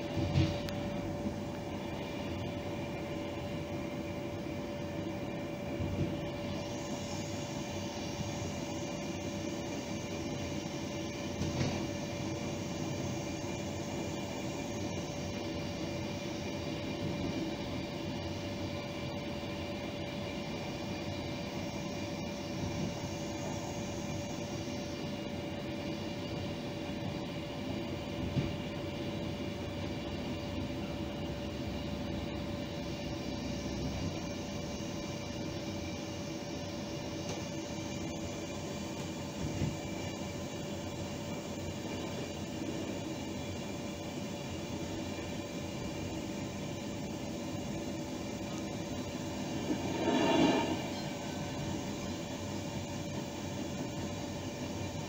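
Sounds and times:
train running rumble and hiss: 0:00.0 - 0:55.0
steady mid-pitched tone: 0:48.2 - 0:53.8.

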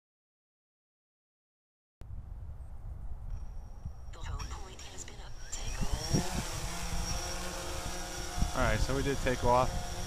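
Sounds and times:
wind rumbling on microphone: 0:02.0 - 0:10.0
drone propellers buzzing: 0:04.3 - 0:10.0.

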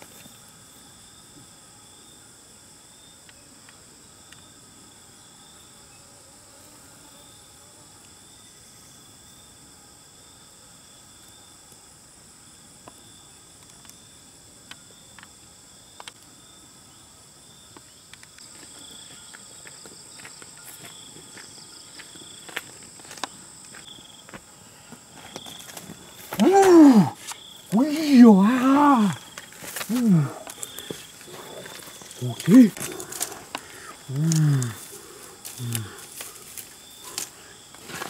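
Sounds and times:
insects chorus: 0:00.0 - 0:38.0.

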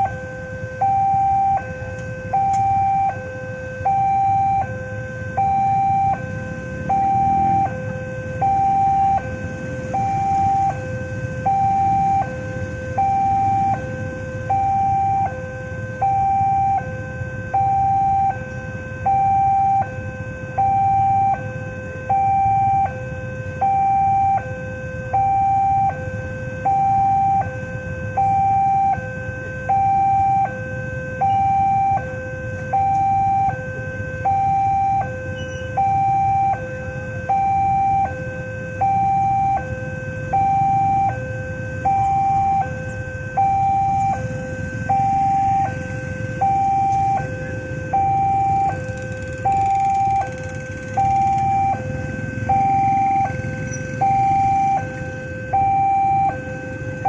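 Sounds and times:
two-tone electronic warning chime: 0:00.0 - 0:57.0.

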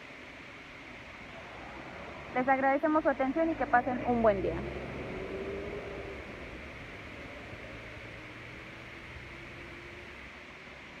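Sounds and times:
even hiss: 0:00.0 - 0:11.0
faint low hum: 0:00.0 - 0:11.0.

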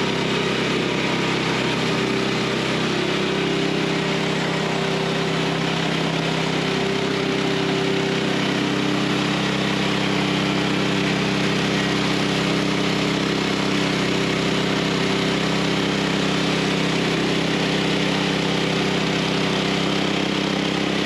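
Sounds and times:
gas engine running under load: 0:00.0 - 0:21.0.

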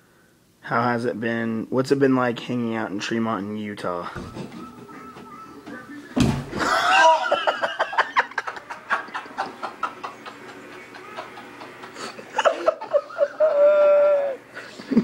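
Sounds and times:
heavy thud on bed: 0:06.2 - 0:06.6
men laughing: 0:06.5 - 0:15.0.

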